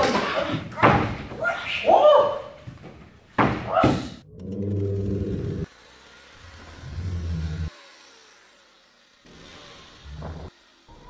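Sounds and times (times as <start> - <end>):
body slamming against doors: 0.0 - 1.5, 2.7 - 4.2
person shouting or grunting: 0.0 - 2.6.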